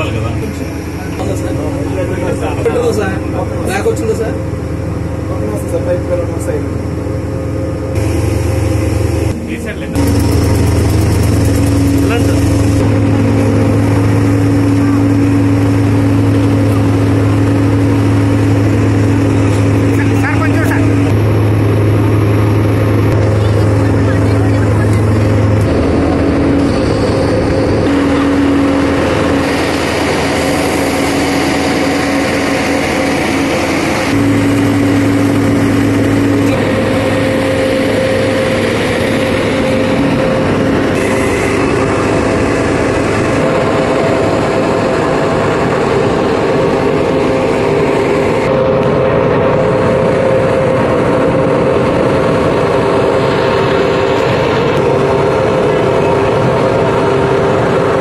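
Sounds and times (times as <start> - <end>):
higher engine drone: 0.0 - 58.0
ship engine deep hum: 0.0 - 58.0.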